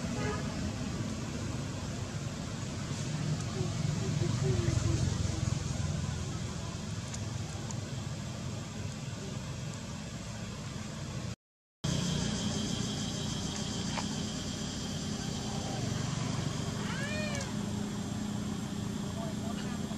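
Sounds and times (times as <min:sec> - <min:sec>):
low hum: 0:11.8 - 0:19.8
baby monkey crying: 0:16.8 - 0:17.6.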